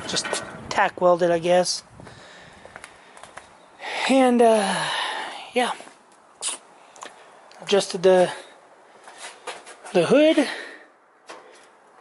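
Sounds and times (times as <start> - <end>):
footsteps on concrete: 2.6 - 3.5, 5.6 - 7.6, 9.0 - 10.2.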